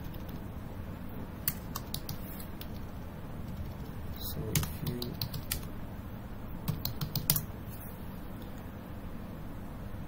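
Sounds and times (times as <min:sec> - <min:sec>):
keyboard typing: 0:00.0 - 0:00.5, 0:01.4 - 0:05.7, 0:06.7 - 0:07.5
low background hum: 0:00.0 - 0:10.0.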